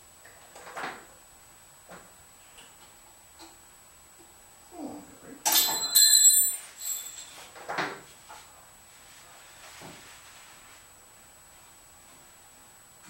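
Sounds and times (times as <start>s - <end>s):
metallic clatter with ring: 5.5s - 7.5s.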